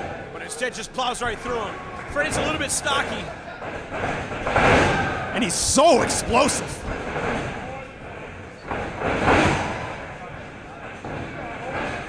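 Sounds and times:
crowd chatter: 0.0s - 8.7s.

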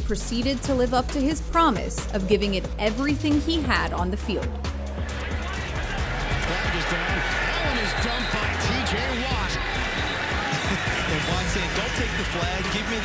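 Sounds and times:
background music with low bass: 0.0s - 13.0s
stadium crowd noise: 4.8s - 13.0s
people shouting: 5.0s - 13.0s.

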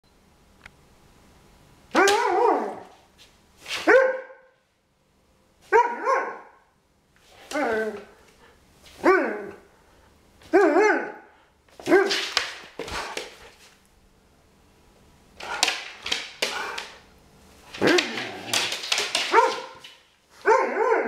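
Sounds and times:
dog barking playfully: 1.9s - 2.9s, 3.8s - 4.5s, 5.6s - 6.6s, 10.5s - 13.1s, 17.8s - 19.8s, 20.4s - 21.0s.

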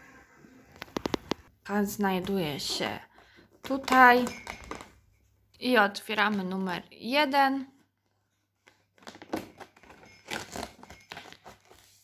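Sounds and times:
cardboard tearing and rustling: 8.7s - 12.0s.

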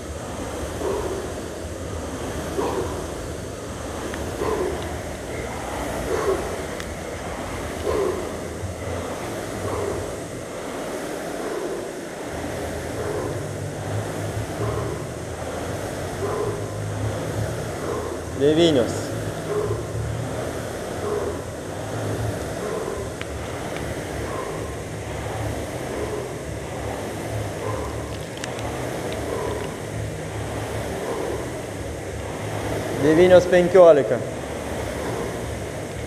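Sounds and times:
rowing machine flywheel whirring: 0.0s - 36.0s.

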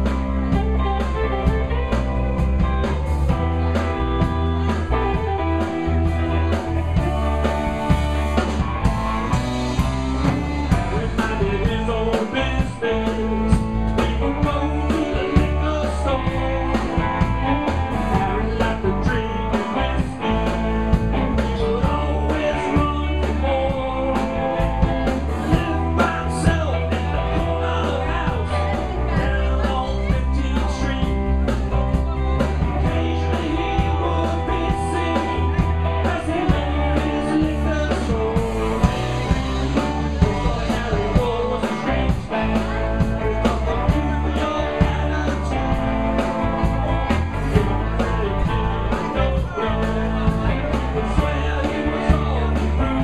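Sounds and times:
live band playing: 0.0s - 53.0s.

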